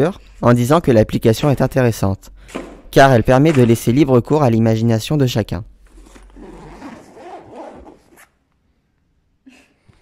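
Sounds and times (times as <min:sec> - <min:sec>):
cloth rustling: 0:05.8 - 0:08.4
backpack zipper being drawn: 0:05.9 - 0:08.4.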